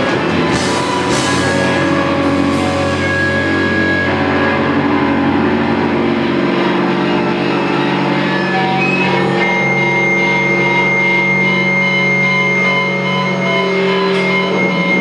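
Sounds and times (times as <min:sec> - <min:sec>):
rock band droning chords: 0:00.0 - 0:15.0
steady high tone: 0:00.0 - 0:15.0.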